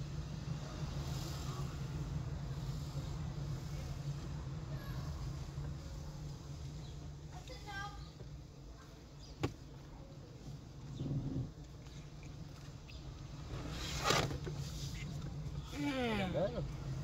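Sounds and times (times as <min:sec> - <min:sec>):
car engine and cabin hum: 0:00.0 - 0:17.0.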